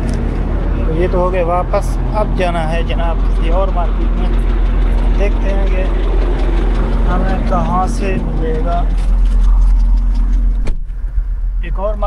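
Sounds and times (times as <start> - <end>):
car engine idling: 0.0 - 12.0
car door shutting: 10.1 - 11.0.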